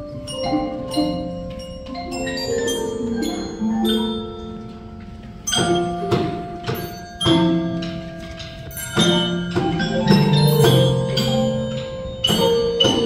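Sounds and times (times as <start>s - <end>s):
tuned bells ringing: 0.0s - 13.0s.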